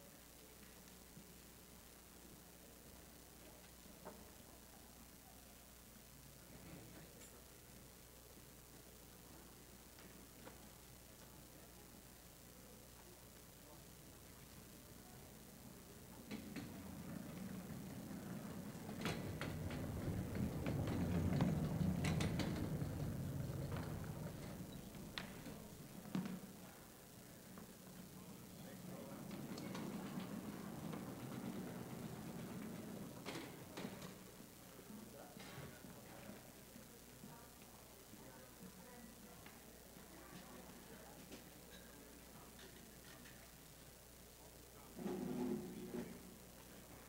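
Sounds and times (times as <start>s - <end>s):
murmur of voices in a hall: 2.9s - 47.0s.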